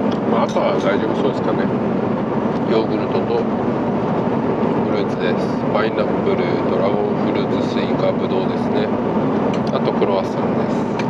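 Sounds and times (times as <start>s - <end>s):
airliner cabin noise: 0.0s - 11.0s.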